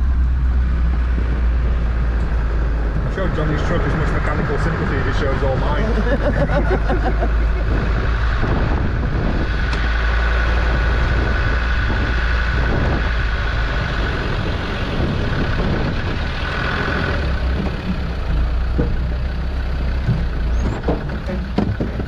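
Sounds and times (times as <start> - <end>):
vehicle engine low drone: 0.0 - 22.0.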